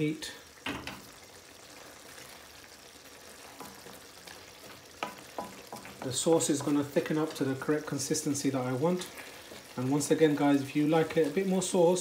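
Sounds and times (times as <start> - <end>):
sauce simmering in a pan: 0.0 - 12.0
wooden spoon knocking: 5.0 - 6.9.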